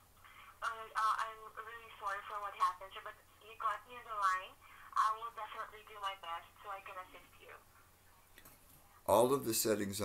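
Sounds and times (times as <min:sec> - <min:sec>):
person speaking over telephone: 0:00.6 - 0:07.6.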